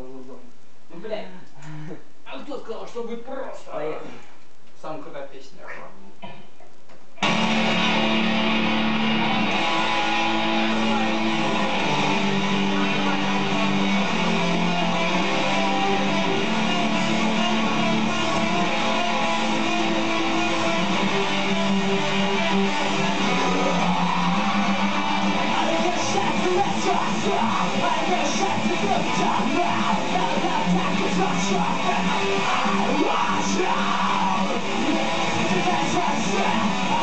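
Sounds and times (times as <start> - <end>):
electric guitars playing metal: 7.2 - 37.0.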